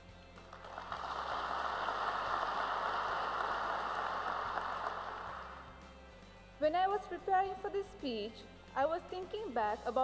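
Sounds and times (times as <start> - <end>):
audience applauding: 0.4 - 5.6.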